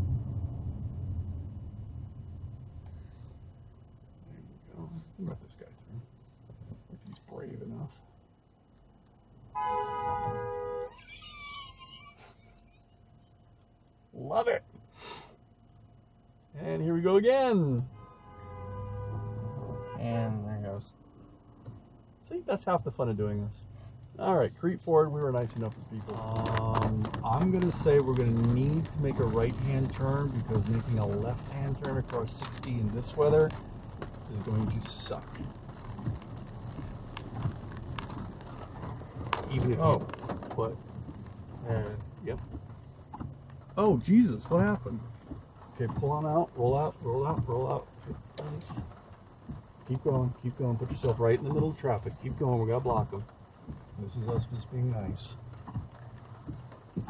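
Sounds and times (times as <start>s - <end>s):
road and engine rumble: 0.0s - 57.0s
two-tone car horn blast: 9.5s - 11.0s, 17.8s - 20.4s.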